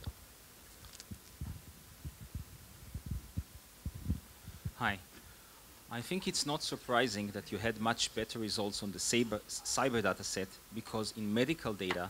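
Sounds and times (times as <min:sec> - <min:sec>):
microphone handling thumps: 0:01.4 - 0:04.8.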